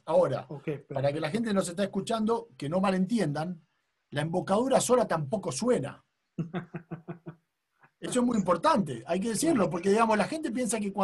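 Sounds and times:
man laughing: 0:06.4 - 0:07.4.

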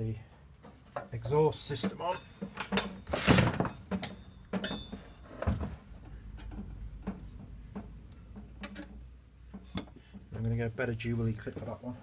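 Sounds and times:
metal pipe and box knocking: 0:00.6 - 0:10.3.

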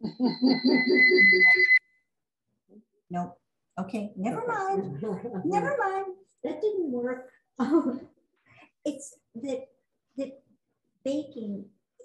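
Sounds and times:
high-pitched feedback whistle: 0:00.0 - 0:02.0.

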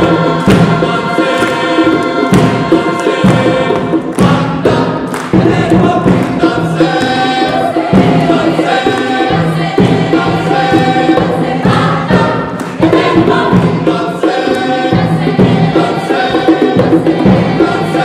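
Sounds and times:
hand drums: 0:00.0 - 0:18.0
mixed choir singing: 0:00.0 - 0:18.0.

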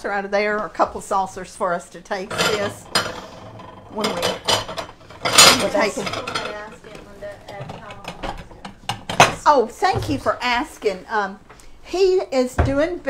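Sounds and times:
ceramic saucers clattering: 0:02.2 - 0:10.2.

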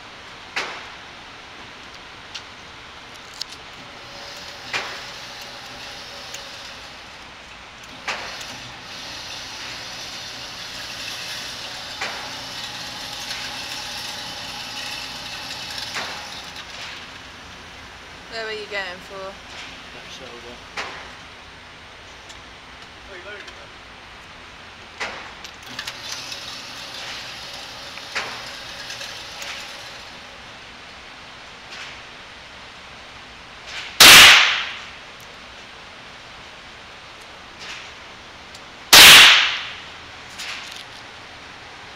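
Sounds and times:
pistol shot with echo: 0:34.0 - 0:34.8, 0:39.0 - 0:39.8.

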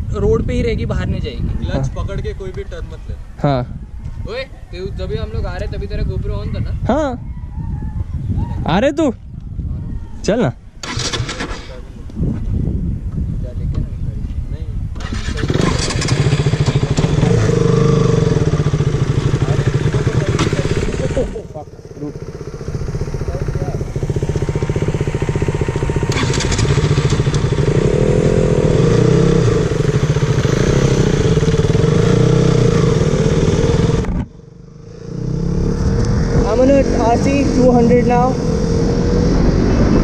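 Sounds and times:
motorcycle engine revving: 0:10.8 - 0:11.8, 0:14.9 - 0:40.0.

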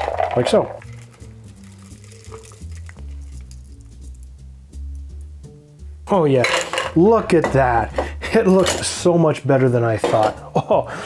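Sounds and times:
drink pouring through strainer: 0:00.0 - 0:04.2.

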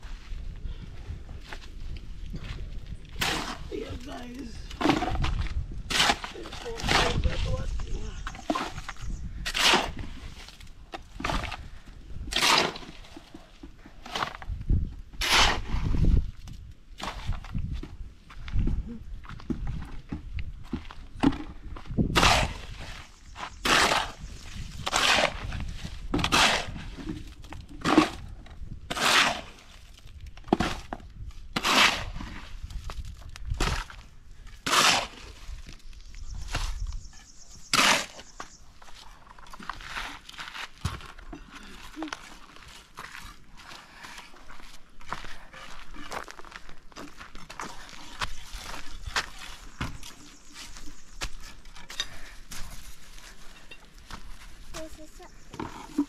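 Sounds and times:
shovel scraping gravelly sand: 0:03.1 - 0:13.4, 0:15.2 - 0:16.4, 0:22.1 - 0:28.3, 0:28.9 - 0:35.7, 0:36.3 - 0:41.1.

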